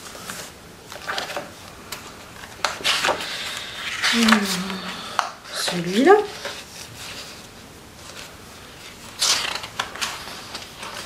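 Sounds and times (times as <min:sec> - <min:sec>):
paper page turning: 0:00.0 - 0:04.9, 0:06.3 - 0:11.0
paper crackling: 0:00.0 - 0:11.0.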